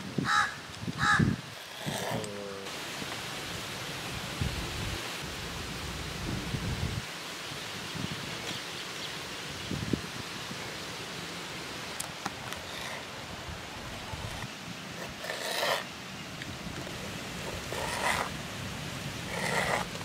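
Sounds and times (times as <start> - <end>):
steady background hiss: 0.0 - 20.0
crow cawing: 0.2 - 1.4.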